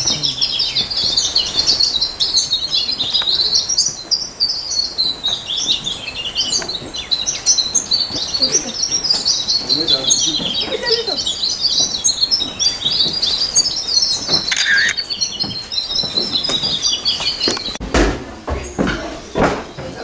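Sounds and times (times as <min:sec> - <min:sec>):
small birds chirping: 0:00.0 - 0:17.8, 0:18.5 - 0:20.0.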